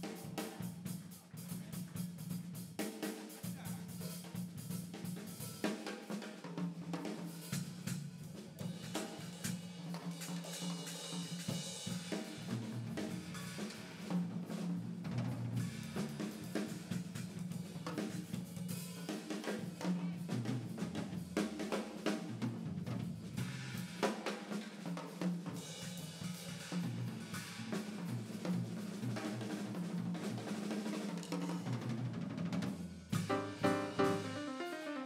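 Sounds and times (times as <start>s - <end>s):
jazz drum solo: 0.0s - 35.0s
cymbal strikes: 33.2s - 35.0s.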